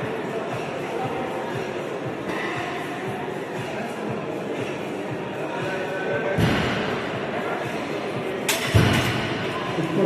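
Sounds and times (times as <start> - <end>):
background music: 0.0 - 10.0
voices in a hall: 0.0 - 10.0.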